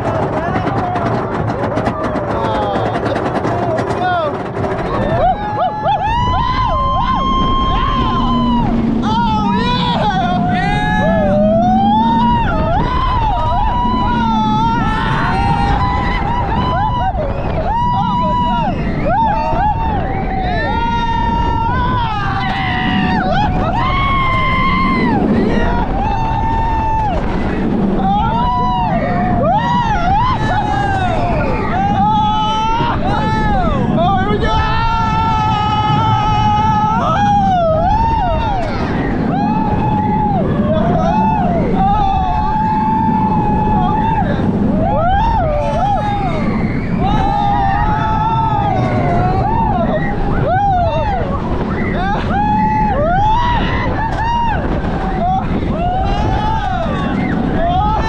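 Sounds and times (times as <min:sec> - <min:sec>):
riders screaming: 0:00.0 - 0:58.0
roller coaster train rumbling: 0:00.0 - 0:58.0
wind rushing: 0:00.0 - 0:58.0.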